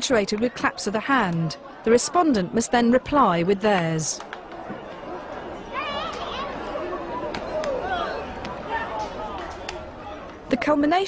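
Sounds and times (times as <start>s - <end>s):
low murmur of voices: 0.0s - 11.0s.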